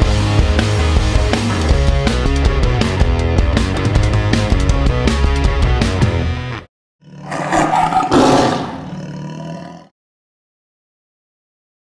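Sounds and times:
rock backing music: 0:00.0 - 0:06.7
lion's roar sound effect: 0:07.0 - 0:10.0.

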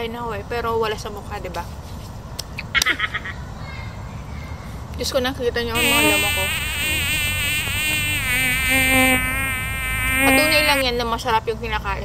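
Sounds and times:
insect buzzing: 0:05.7 - 0:10.9.

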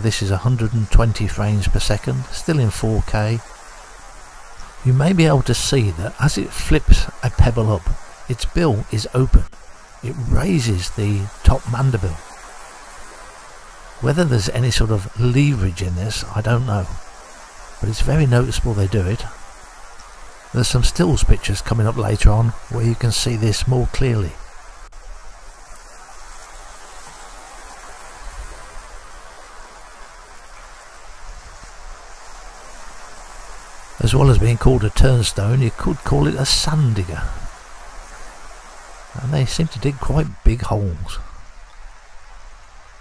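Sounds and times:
man narrating: 0:00.0 - 0:03.4, 0:04.8 - 0:12.2, 0:14.0 - 0:17.0, 0:17.8 - 0:19.4, 0:20.6 - 0:24.4, 0:34.0 - 0:37.5, 0:39.2 - 0:41.3
faint steady hiss: 0:00.0 - 0:43.0
surf washing on beach: 0:00.0 - 0:43.0.

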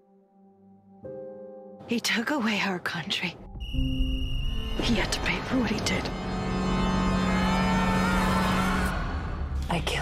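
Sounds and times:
low drone: 0:03.8 - 0:10.0.

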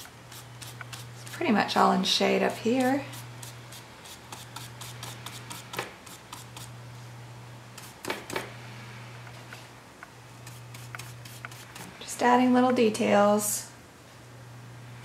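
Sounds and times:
brush scratching on paper: 0:00.0 - 0:01.5, 0:10.4 - 0:11.9.

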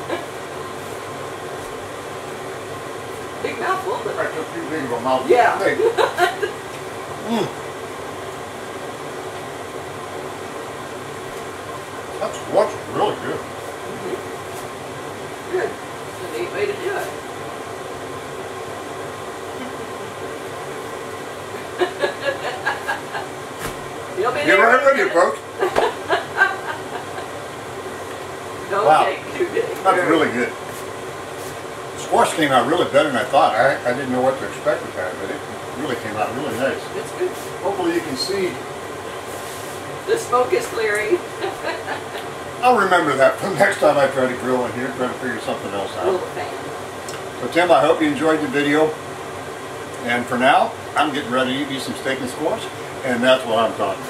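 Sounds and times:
fan whooshing hum: 0:00.0 - 0:54.0
person voicing mm: 0:07.2 - 0:07.6.

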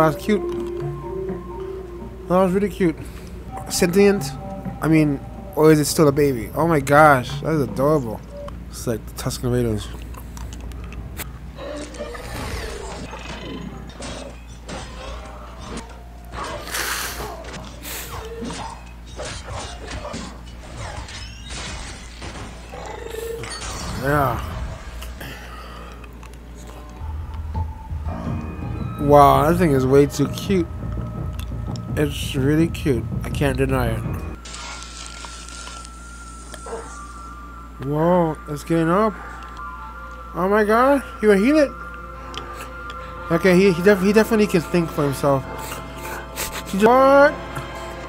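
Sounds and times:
film music: 0:00.0 - 0:48.0
low hum: 0:19.9 - 0:48.0.

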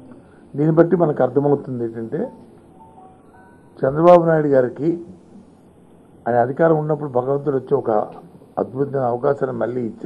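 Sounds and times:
faint high steady tones: 0:00.0 - 0:10.0
man speaking into a microphone: 0:00.5 - 0:02.4, 0:03.8 - 0:05.1, 0:06.2 - 0:10.0.

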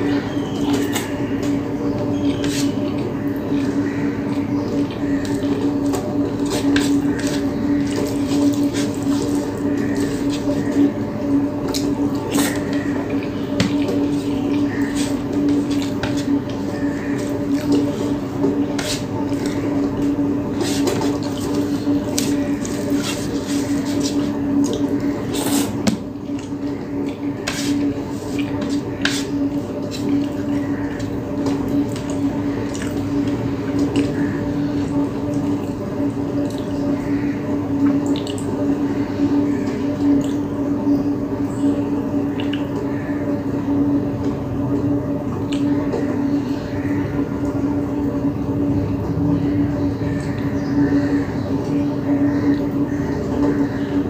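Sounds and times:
steady low hum: 0:00.0 - 0:54.0
chewing and wet mouth sounds: 0:29.4 - 0:34.2, 0:37.8 - 0:38.6.

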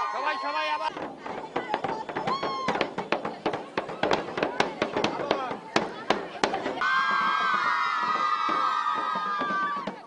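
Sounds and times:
girls shouting and cheering: 0:00.0 - 0:00.9, 0:02.0 - 0:03.0, 0:06.6 - 0:10.0
marching bass drums beaten: 0:00.9 - 0:10.0.

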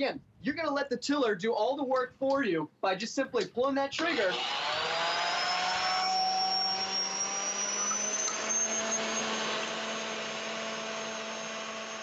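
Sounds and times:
electric tiller motor whining: 0:04.0 - 0:12.0.

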